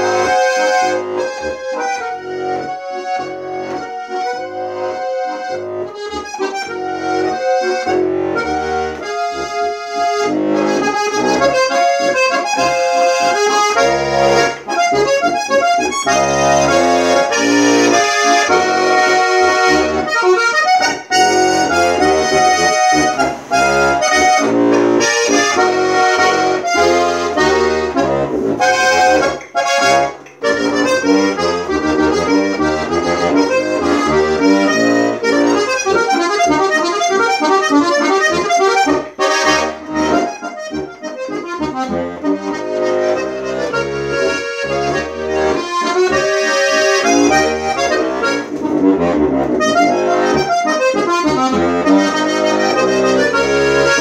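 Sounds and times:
button accordion folk tune: 0.0 - 54.0.

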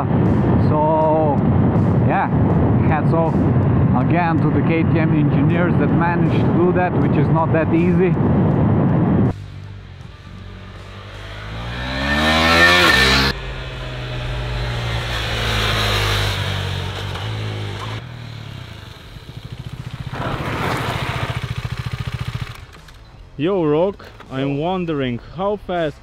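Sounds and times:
motorcycle engine revving: 8.2 - 23.3.

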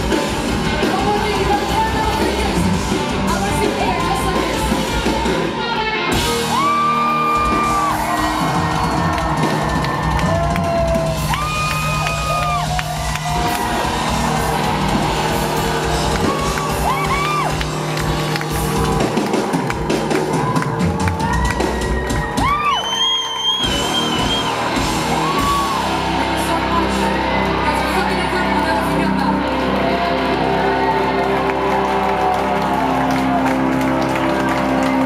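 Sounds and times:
crowd whooping and screaming: 0.0 - 35.0
live rock band: 0.0 - 35.0
woman singing: 0.7 - 5.0
high rising scream: 6.3 - 17.8.

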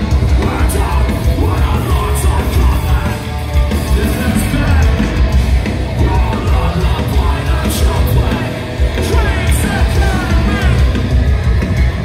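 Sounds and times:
metalcore band playing live: 0.0 - 12.0
yelled vocals: 0.0 - 12.0.

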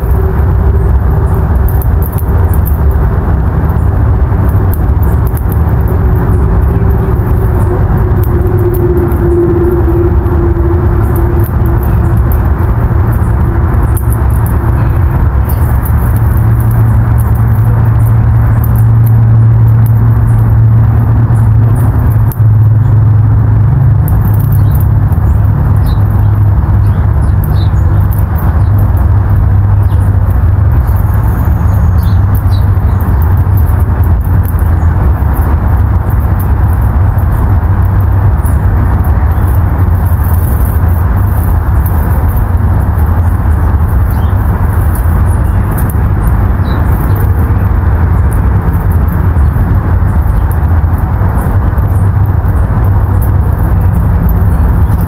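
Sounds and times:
engine drone: 0.0 - 55.0.

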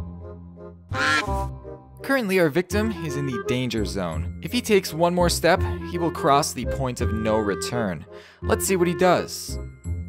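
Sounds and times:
waterfowl honk: 0.9 - 1.4.

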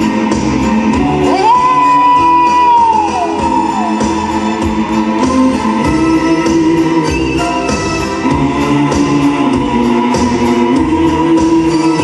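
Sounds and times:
keyboards: 0.0 - 12.0
live band playing pop song: 0.0 - 12.0
steady drum beat: 0.0 - 12.0
sustained choir-like vocals: 8.2 - 12.0.

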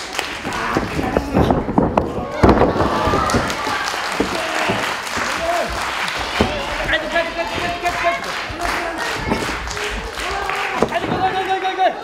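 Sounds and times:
feet running on wrestling ring: 0.5 - 11.5.

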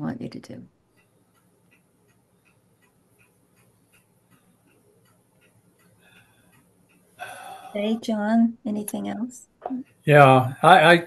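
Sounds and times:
faint regular ticking: 0.0 - 10.0.

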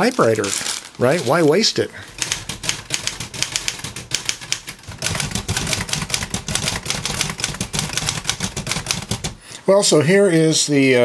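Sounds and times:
typewriter keystroke clacks: 2.1 - 9.4.

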